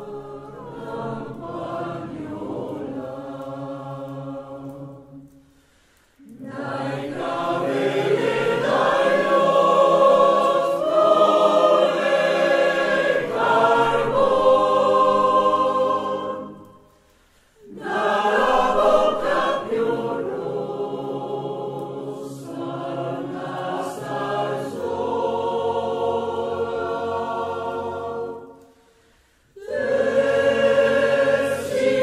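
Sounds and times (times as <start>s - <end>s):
mixed choir singing: 0.0s - 5.4s, 6.2s - 16.9s, 17.6s - 32.0s.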